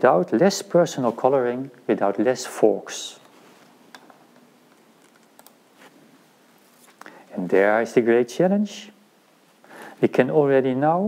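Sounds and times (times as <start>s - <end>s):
faint clicks: 3.9s - 5.6s.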